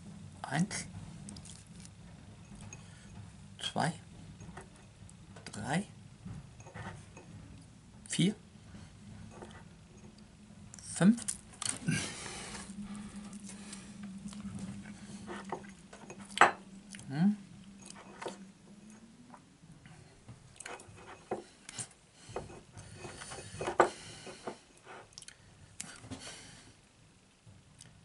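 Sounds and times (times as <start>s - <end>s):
low steady hum: 0.0s - 28.0s.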